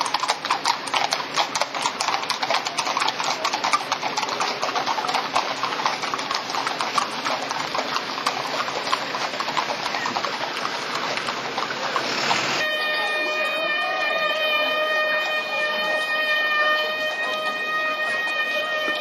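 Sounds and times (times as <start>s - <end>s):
horse hooves clip-clopping on pavement: 0.0s - 19.0s.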